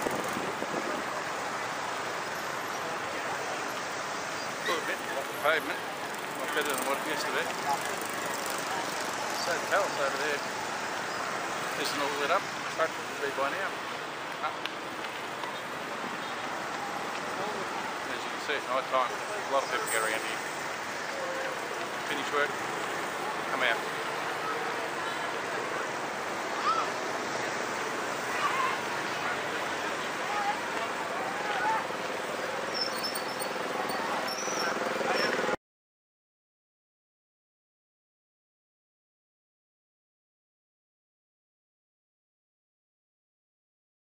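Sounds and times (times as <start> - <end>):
cars and motorbikes passing: 0.0 - 35.6
traffic noise: 0.0 - 35.6
city ambience hiss: 0.1 - 35.4
people talking: 4.6 - 10.4, 17.2 - 20.4.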